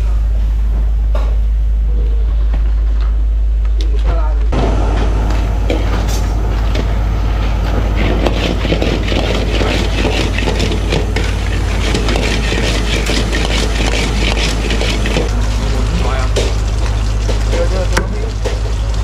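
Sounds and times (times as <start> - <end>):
gas burners roaring: 0.0 - 19.0
food sizzling: 4.6 - 19.0.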